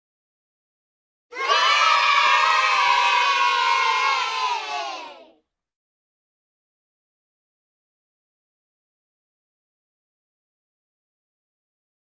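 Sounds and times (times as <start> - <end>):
children cheering and shouting: 1.3 - 5.4.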